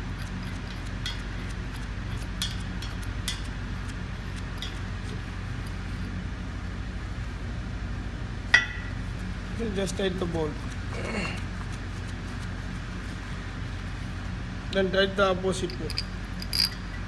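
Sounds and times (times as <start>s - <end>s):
metallic tool clicks: 15.7s - 16.8s.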